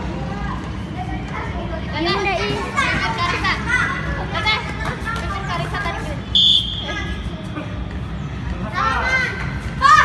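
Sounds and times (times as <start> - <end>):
children shouting: 8.8 - 10.0.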